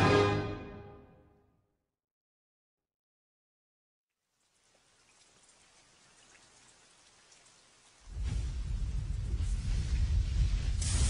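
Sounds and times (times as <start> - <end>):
faint hiss with light ticks: 4.4 - 8.6.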